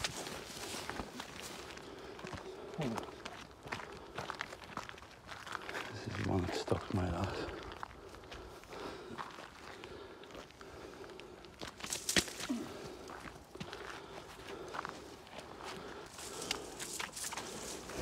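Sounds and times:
footsteps through long grass: 0.0s - 2.0s, 13.1s - 18.0s.

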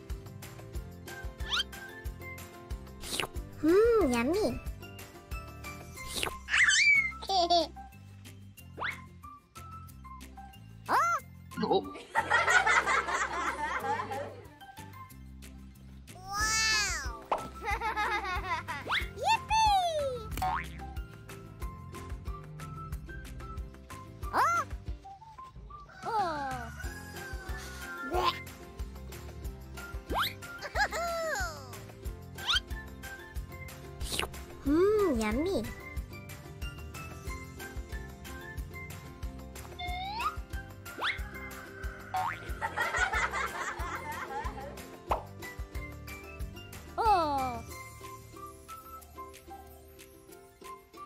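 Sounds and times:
light children's music: 0.0s - 51.0s.

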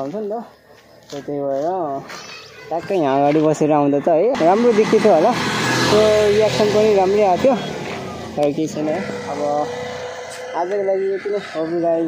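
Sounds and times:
road noise: 0.0s - 12.0s
motorcycle engine: 3.8s - 12.0s.

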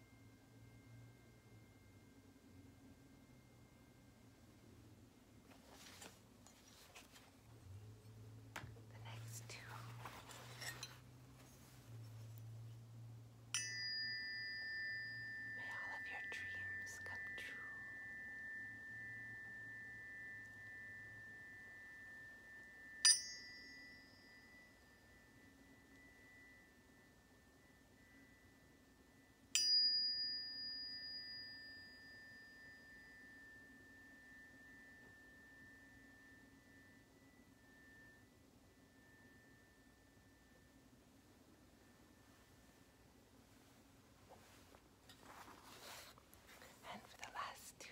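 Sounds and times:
tuning fork ringing: 0.0s - 7.2s, 9.6s - 44.6s.

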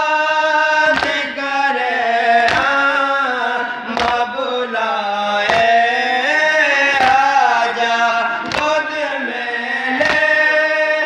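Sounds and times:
men chanting: 0.0s - 11.0s
hands beating chests: 2.5s - 2.8s, 4.0s - 4.2s, 5.5s - 5.8s, 8.4s - 8.8s, 10.0s - 10.3s.

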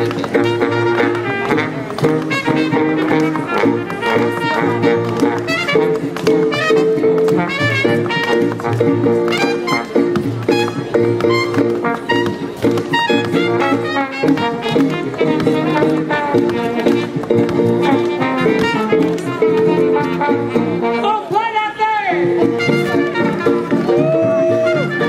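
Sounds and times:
jazz band playing swing: 0.0s - 21.4s, 22.1s - 25.0s
tap shoes clicking: 0.0s - 21.4s, 22.1s - 25.0s.

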